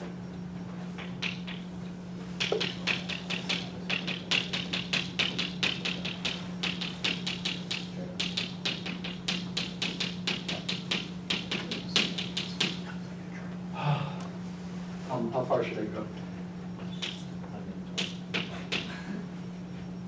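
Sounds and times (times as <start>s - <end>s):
steady low hum: 0.0s - 20.0s
chalk tapping on blackboard: 2.4s - 12.9s.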